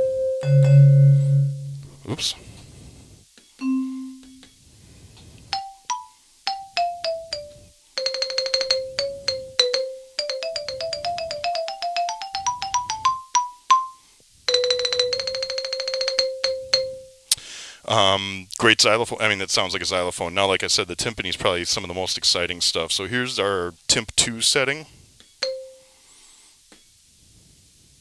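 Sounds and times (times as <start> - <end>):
xylophone notes and rolls: 0.0 - 1.9, 3.6 - 4.5, 5.5 - 17.2, 25.4 - 25.8.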